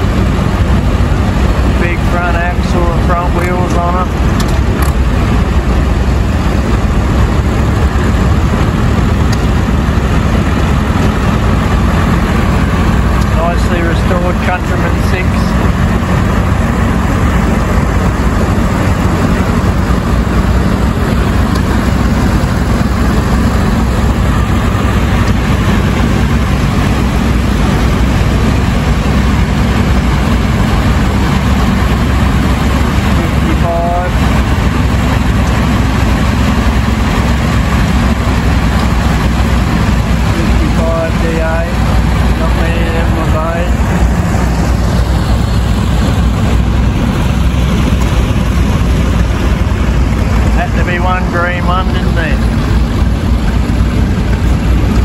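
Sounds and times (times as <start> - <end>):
tractor engines running: 0.0 - 55.0.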